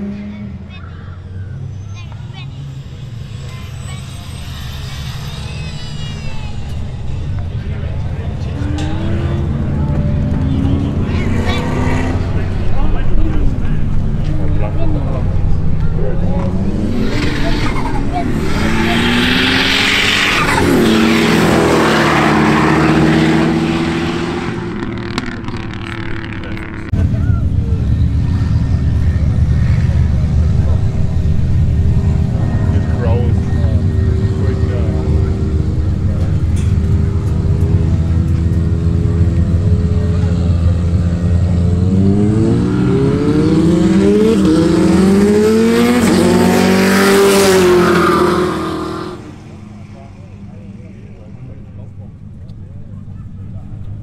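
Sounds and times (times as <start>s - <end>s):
distant engine rumble: 0.0s - 54.0s
racing car engines revving past: 0.0s - 54.0s.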